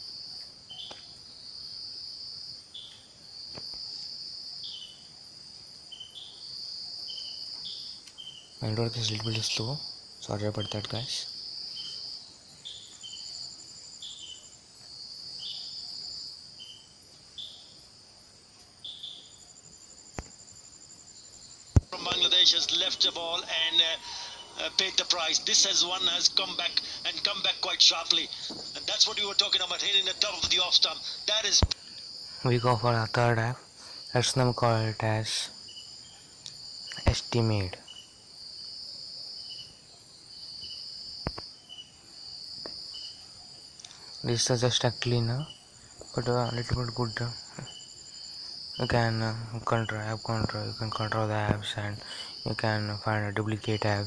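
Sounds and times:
high-pitched insect trilling: 0.0 - 54.0.

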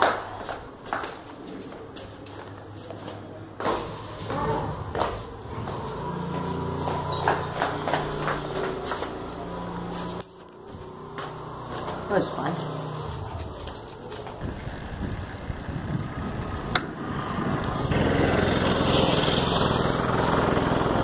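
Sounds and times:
footsteps: 0.0 - 14.7.

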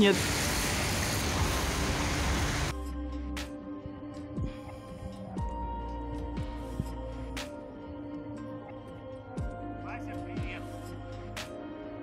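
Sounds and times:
soft background music: 2.6 - 12.0.

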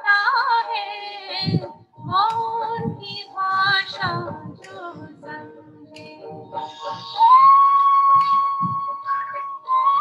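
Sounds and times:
devotional song with singing: 0.0 - 10.0.

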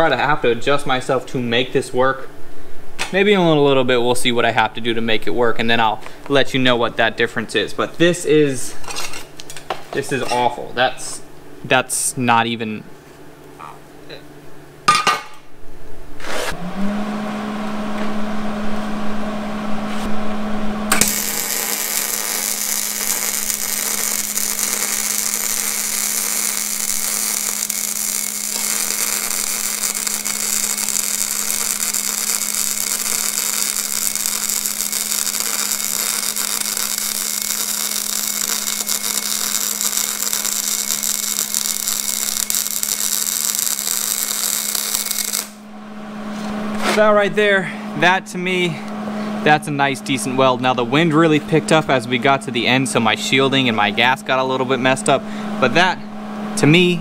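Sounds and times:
welder hum: 16.2 - 57.0
welding arc crackling sizzle: 20.9 - 45.7.

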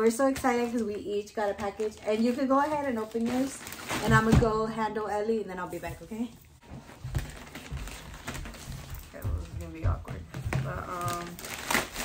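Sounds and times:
plastic crinkling: 0.1 - 4.7, 5.7 - 12.0.

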